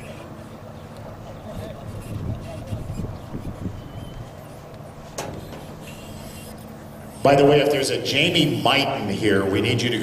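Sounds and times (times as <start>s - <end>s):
low outdoor background hum: 0.0s - 10.0s.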